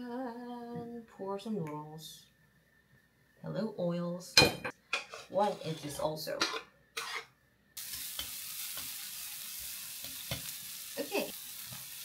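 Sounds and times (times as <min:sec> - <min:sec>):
onions sizzling in hot oil: 0:07.8 - 0:12.0.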